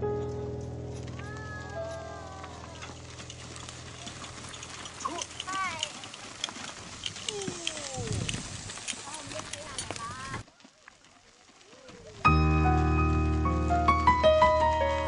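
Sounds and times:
donkey hooves clip-clopping: 0:00.0 - 0:15.0.

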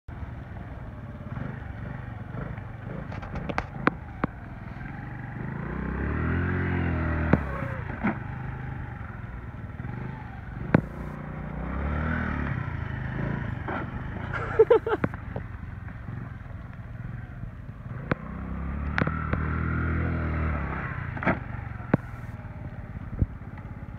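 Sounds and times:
motorcycle engine revving: 0:00.1 - 0:23.9.

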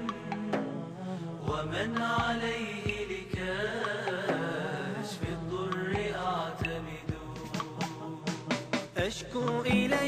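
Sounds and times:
vocal chorus humming: 0:00.0 - 0:10.0.

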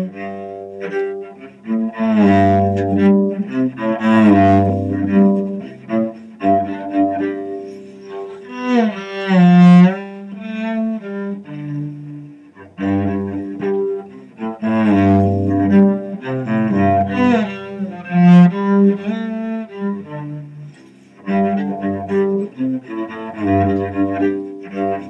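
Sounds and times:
bowed cello melody: 0:00.0 - 0:25.0.

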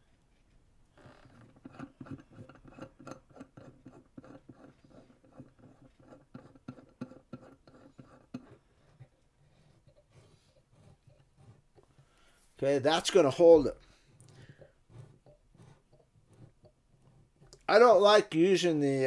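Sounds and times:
metal clamp clicking and scratching: 0:01.0 - 0:09.1.

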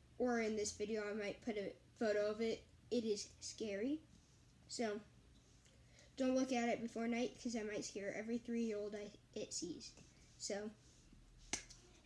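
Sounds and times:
hand snap: 0:11.5 - 0:11.8.

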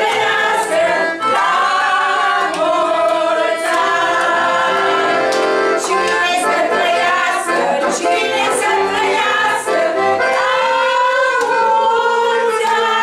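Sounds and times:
group of people singing: 0:00.0 - 0:13.0.

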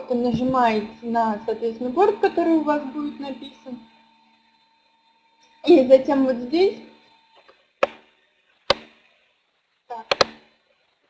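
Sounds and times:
computer mouse clicking: 0:08.7 - 0:09.0, 0:10.1 - 0:10.5.

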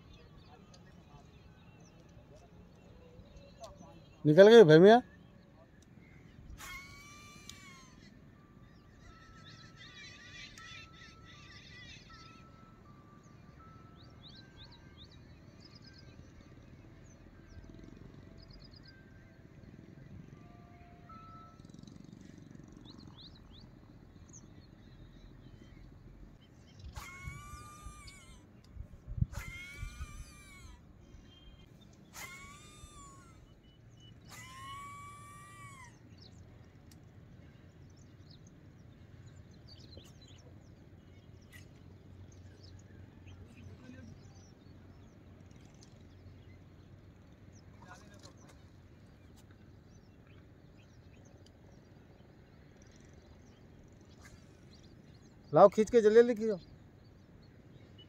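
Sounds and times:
faint bird chirps: 0:00.0 - 0:58.0
wailing animal calls: 0:06.6 - 0:13.0, 0:26.8 - 0:28.5, 0:29.3 - 0:30.9, 0:32.1 - 0:33.6, 0:34.2 - 0:36.1.

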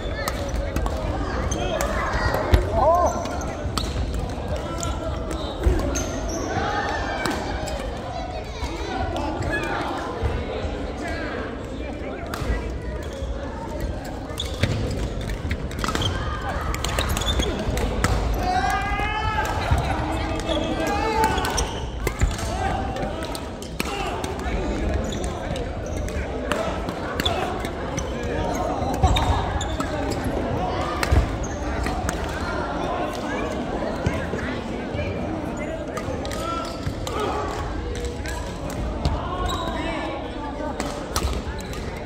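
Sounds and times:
players chattering and calling: 0:00.0 - 0:42.0.

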